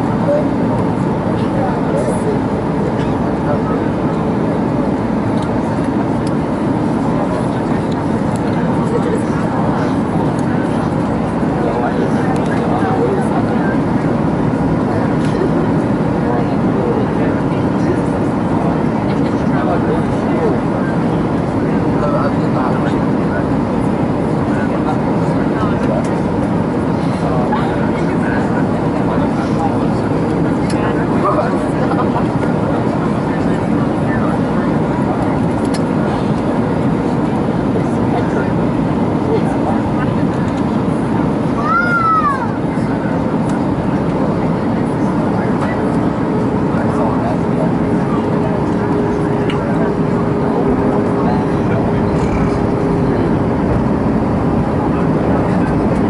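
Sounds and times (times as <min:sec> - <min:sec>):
airliner cabin jet engine rush: 0:00.0 - 0:56.0.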